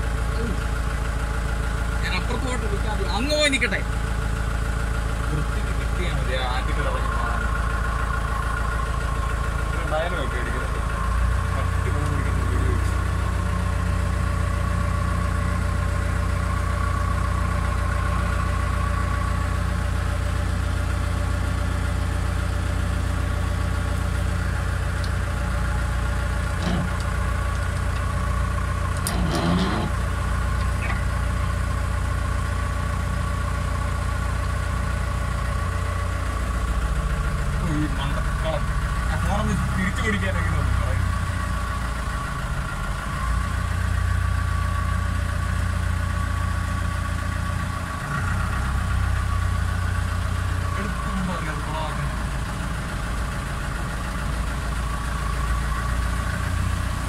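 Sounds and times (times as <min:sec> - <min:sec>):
engine idling: 0:00.0 - 0:57.0.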